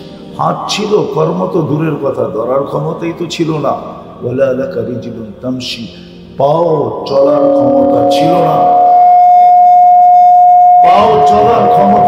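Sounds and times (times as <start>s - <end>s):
man's voice: 0.4s - 8.8s, 10.8s - 12.0s
microphone feedback whistle: 7.1s - 12.0s.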